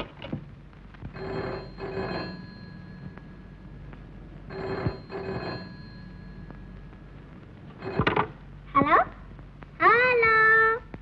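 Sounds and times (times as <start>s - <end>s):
telephone bell ringing: 1.1s - 3.8s, 4.5s - 6.9s, 7.7s - 8.3s.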